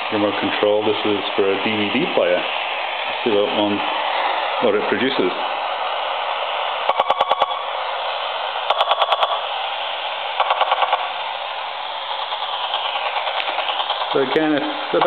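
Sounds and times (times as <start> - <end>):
radio static hissing: 0.0 - 15.0
rapid interference pulses: 0.0 - 15.0.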